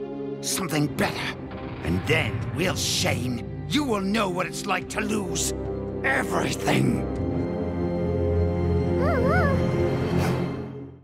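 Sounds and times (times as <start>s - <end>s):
dark orchestral music: 0.0s - 11.0s
cartoon creature whimpering: 9.0s - 9.7s.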